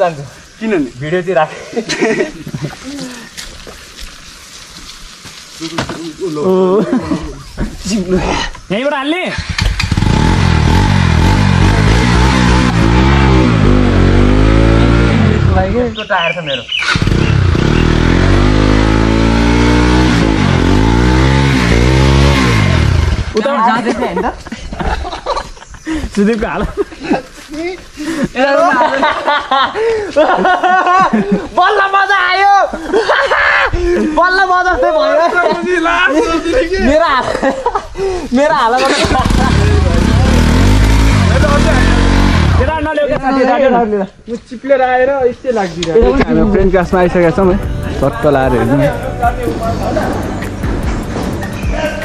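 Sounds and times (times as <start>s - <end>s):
motorcycle engine revving: 9.3s - 16.0s, 16.7s - 23.5s, 38.7s - 43.0s
person speaking: 45.3s - 50.5s.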